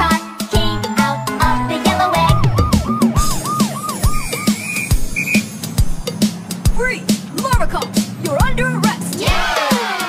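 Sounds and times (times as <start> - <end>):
background music with beat: 0.0 - 10.0
cartoon police siren whoops: 2.0 - 5.4.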